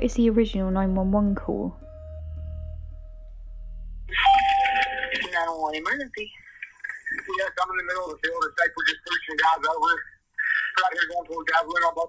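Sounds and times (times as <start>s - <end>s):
low hum: 0.0s - 10.0s
electronic telephone ringing: 4.2s - 5.1s.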